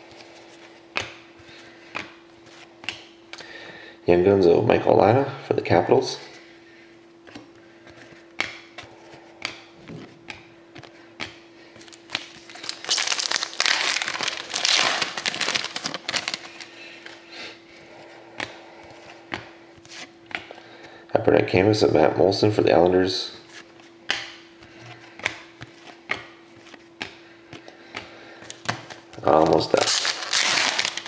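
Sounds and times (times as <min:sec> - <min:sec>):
trading cards clicking and tapping: 0:07.3 - 0:12.0
foil wrapper tearing and crinkling: 0:11.8 - 0:16.7, 0:29.2 - 0:31.0.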